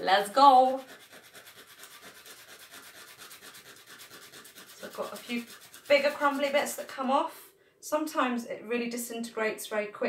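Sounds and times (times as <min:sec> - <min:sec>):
tablet scratching on sandpaper: 0:00.2 - 0:06.9.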